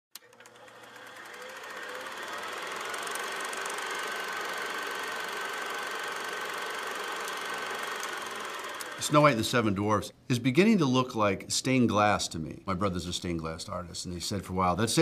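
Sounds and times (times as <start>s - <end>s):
mechanical whirr with rapid clicking: 0.1s - 9.3s.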